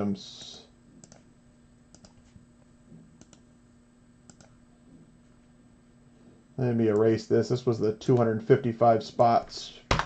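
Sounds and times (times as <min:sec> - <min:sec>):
low steady hum: 0:00.0 - 0:10.0
computer mouse clicks: 0:01.0 - 0:01.3, 0:01.9 - 0:02.3, 0:03.2 - 0:03.4, 0:04.3 - 0:04.6.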